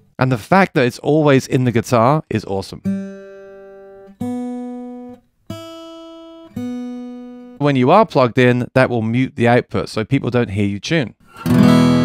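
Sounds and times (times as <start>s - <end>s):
acoustic guitar strings plucked: 2.8s - 7.6s, 11.3s - 12.0s.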